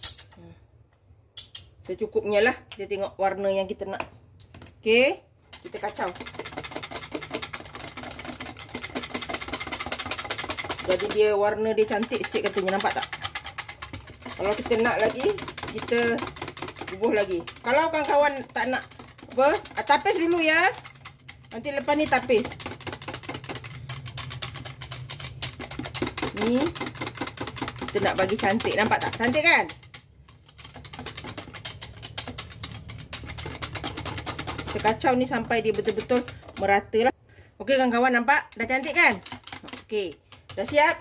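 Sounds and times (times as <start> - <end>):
whisk beating batter in jug: 3.8 - 37.2, 37.9 - 41.0.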